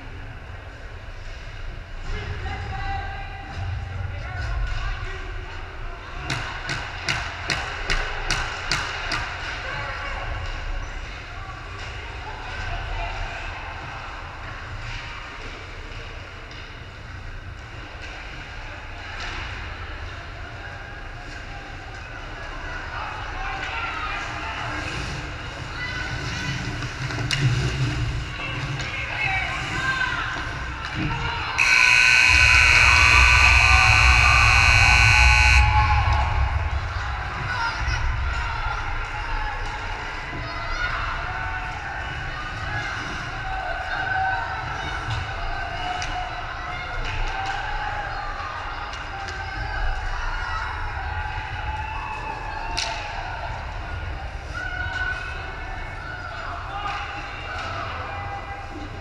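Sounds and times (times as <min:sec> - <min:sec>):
hollow rink ambience: 0:00.0 - 0:59.0
voices of players and spectators: 0:00.0 - 0:59.0.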